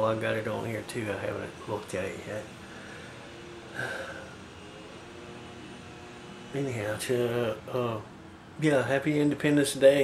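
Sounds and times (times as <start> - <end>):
air conditioner hum: 0.0 - 10.0
faint steady tones: 0.0 - 10.0.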